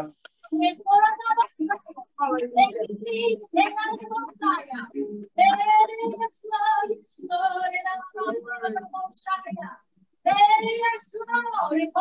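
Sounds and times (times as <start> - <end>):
woman singing slow song: 0.5 - 12.0.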